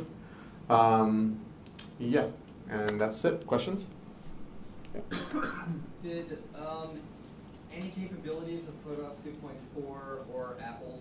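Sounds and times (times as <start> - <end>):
person speaking: 4.8 - 11.0
person coughing: 5.0 - 5.9.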